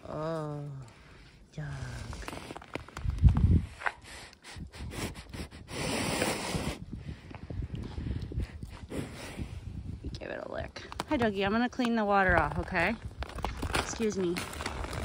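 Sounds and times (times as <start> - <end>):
cow sniffing and snuffling: 2.0 - 10.0
cow long exhale: 3.8 - 9.8.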